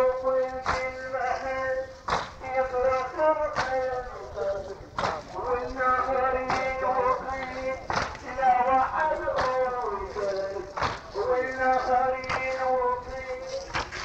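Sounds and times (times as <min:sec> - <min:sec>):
melodic chanting: 0:00.0 - 0:14.0
mourners beating their chests: 0:00.0 - 0:14.0.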